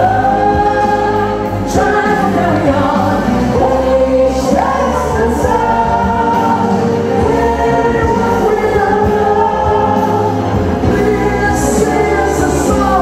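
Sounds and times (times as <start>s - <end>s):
instrumental pop backing: 0.0s - 13.0s
man and woman singing together: 0.0s - 13.0s.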